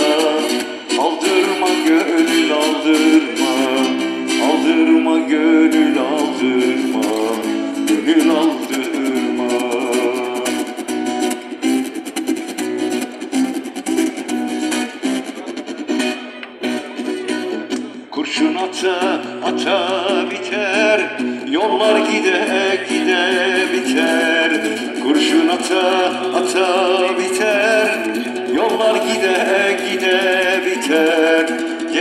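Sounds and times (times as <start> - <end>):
older man singing: 0.0 - 10.8, 18.0 - 32.0
acoustic guitar strummed: 0.0 - 32.0.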